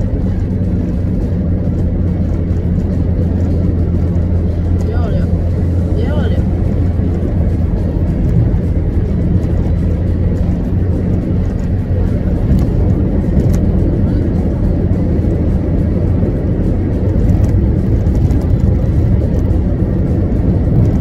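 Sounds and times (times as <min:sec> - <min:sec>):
car rumble inside cabin: 0:00.0 - 0:21.0.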